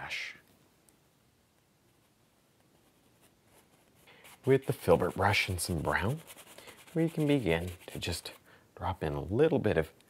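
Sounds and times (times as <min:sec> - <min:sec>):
brush scratching on canvas: 0:01.9 - 0:08.4.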